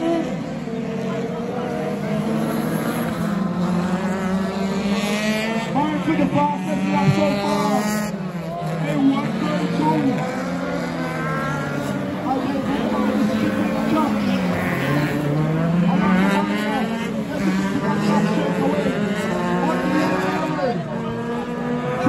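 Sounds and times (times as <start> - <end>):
distant race car engines revving: 0.0 - 22.0
public address commentary: 0.0 - 22.0.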